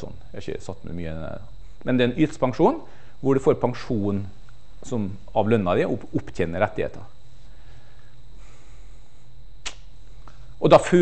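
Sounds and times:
steady low hum: 0:00.0 - 0:11.0
short sharp click: 0:09.6 - 0:09.9.

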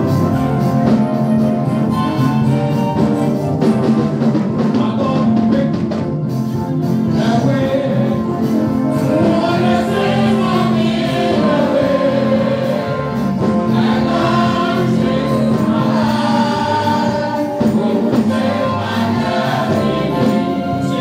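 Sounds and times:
musical accompaniment: 0:00.0 - 0:21.0
gospel choir singing: 0:06.8 - 0:21.0.

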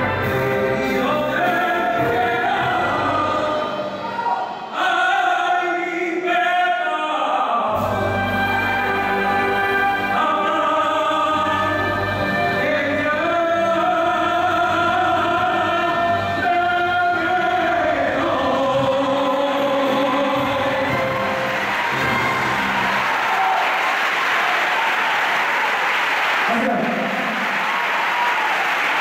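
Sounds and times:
man's voice: 0:00.0 - 0:21.5, 0:26.4 - 0:27.6
male singer with orchestra: 0:00.0 - 0:22.5
audience applause: 0:20.8 - 0:29.0.

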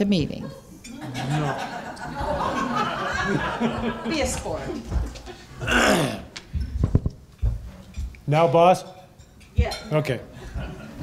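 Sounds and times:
knocks and thumps on microphone: 0:06.4 - 0:08.1.

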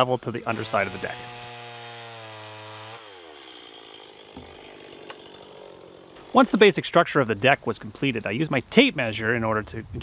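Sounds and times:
chainsaw idling and shutting off: 0:00.5 - 0:06.9.

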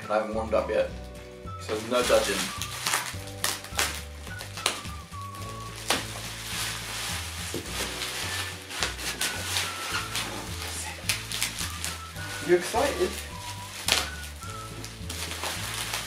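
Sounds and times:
background music with bass line: 0:00.0 - 0:16.0
bubble wrap crinkling and crackling: 0:01.1 - 0:16.0.

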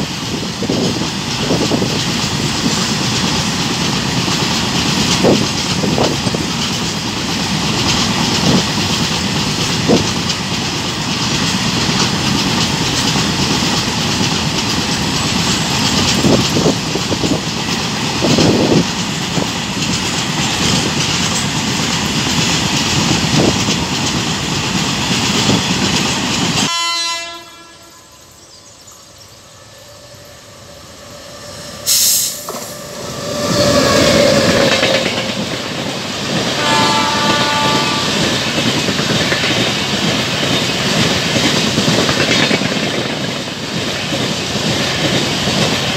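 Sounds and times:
freight train wheels clattering: 0:00.0 - 0:26.7, 0:31.4 - 0:45.9
passenger train clatter: 0:00.0 - 0:45.9
train horn note: 0:26.6 - 0:28.3, 0:36.5 - 0:38.5.

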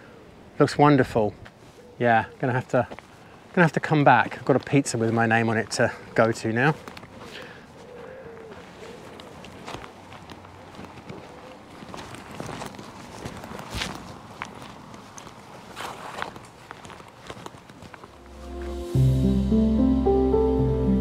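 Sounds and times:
footsteps on earth and grass: 0:02.8 - 0:19.0.

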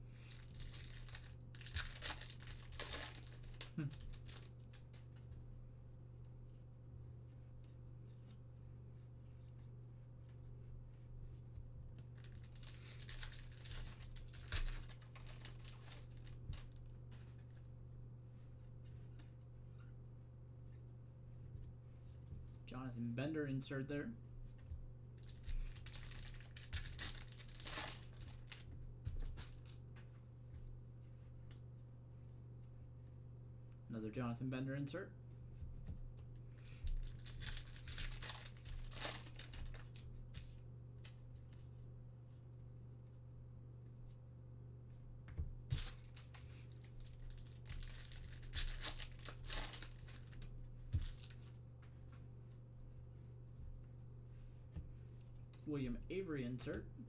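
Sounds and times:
steady low hum: 0:00.0 - 0:57.0
foil wrapper crinkling and tearing: 0:00.2 - 0:05.0, 0:12.0 - 0:17.0, 0:25.2 - 0:29.7, 0:36.8 - 0:40.5, 0:45.7 - 0:51.6
cards rustling and clicking: 0:12.0 - 0:17.6, 0:36.6 - 0:41.6, 0:45.7 - 0:52.0.

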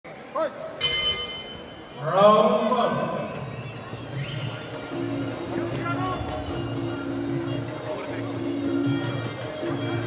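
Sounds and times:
boxing ring bell ringing: 0:00.8 - 0:02.0.

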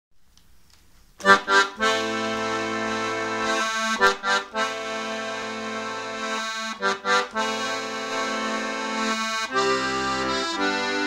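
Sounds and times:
accordion chords: 0:01.2 - 0:11.0.

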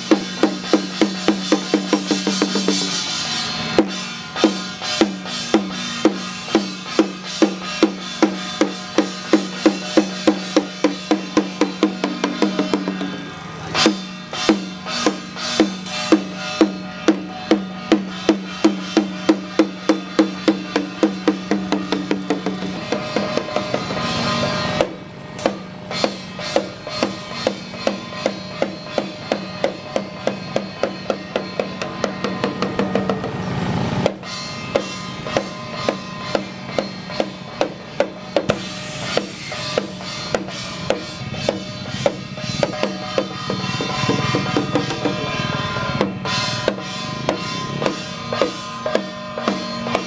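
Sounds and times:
hand drum beating: 0:00.0 - 0:03.0, 0:03.7 - 0:24.1, 0:24.8 - 0:33.4, 0:34.0 - 0:50.0
brass cymbal strikes: 0:00.0 - 0:50.0.

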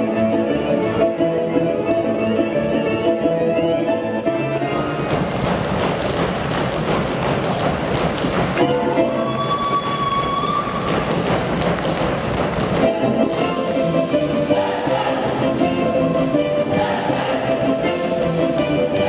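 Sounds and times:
folk dance music: 0:00.0 - 0:19.0
dancers' feet tapping on stage: 0:04.3 - 0:14.6, 0:17.1 - 0:19.0.

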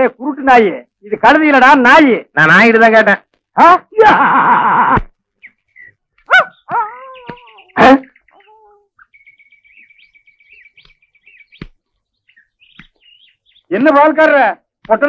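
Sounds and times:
birds chirping: 0:05.1 - 0:15.0.

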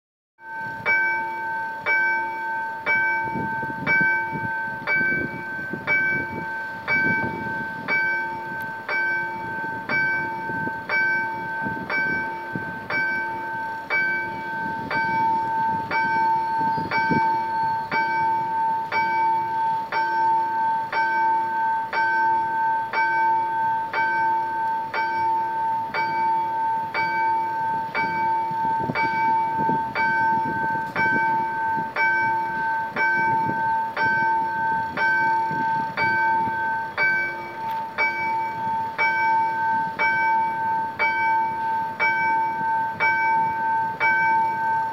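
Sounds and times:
level crossing bell ringing: 0:00.4 - 0:44.9.

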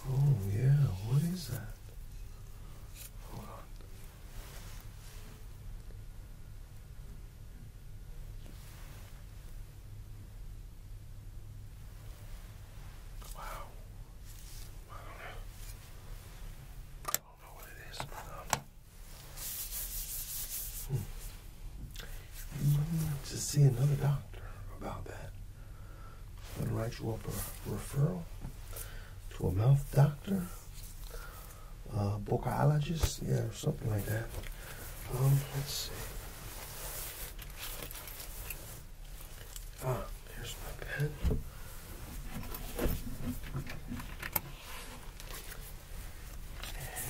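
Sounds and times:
low steady hum: 0:00.0 - 0:47.0
gloved hands rubbing together: 0:17.6 - 0:24.1, 0:29.8 - 0:31.7, 0:32.8 - 0:47.0.

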